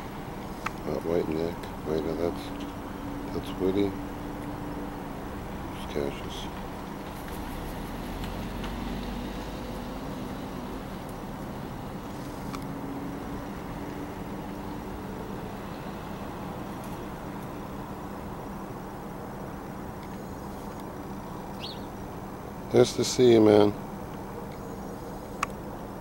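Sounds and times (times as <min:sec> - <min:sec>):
low mechanical hum: 0:00.0 - 0:26.0.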